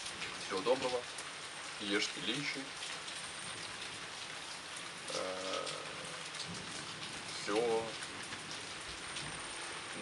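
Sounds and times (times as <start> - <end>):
steady rain: 0.0 - 10.0
man grunting: 5.1 - 6.1.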